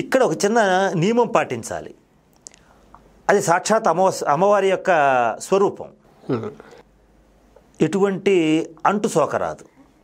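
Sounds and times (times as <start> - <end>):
man speaking: 0.0 - 2.0, 3.3 - 6.8, 7.8 - 9.8.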